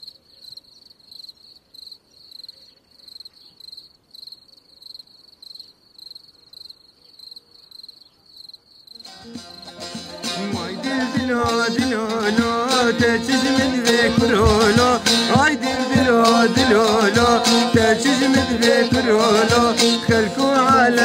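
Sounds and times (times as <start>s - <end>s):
cricket chirping: 0.0s - 9.7s
loud music: 9.0s - 21.0s.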